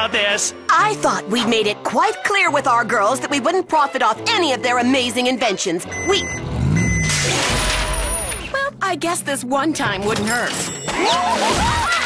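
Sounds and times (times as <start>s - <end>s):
reversing beeps: 5.9s - 7.2s.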